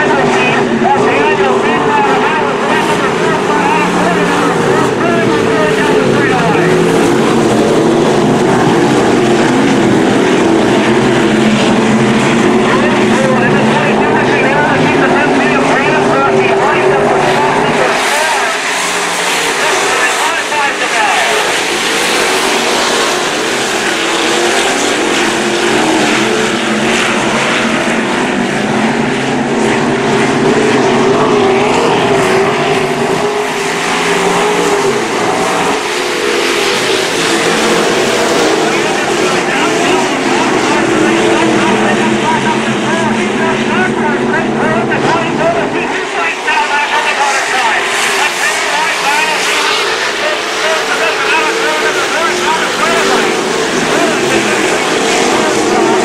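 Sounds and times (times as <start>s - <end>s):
race car engines droning: 0.0s - 56.0s.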